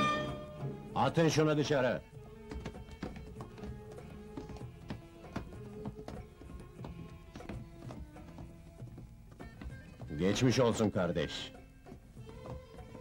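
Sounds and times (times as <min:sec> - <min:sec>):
quiet film score music: 0:00.0 - 0:13.0
short irregular knocks and taps: 0:02.1 - 0:13.0.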